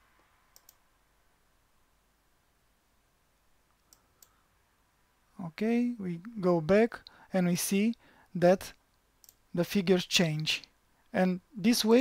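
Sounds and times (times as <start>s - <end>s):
computer mouse clicks: 0.5s - 0.8s, 3.7s - 4.4s, 9.2s - 9.4s.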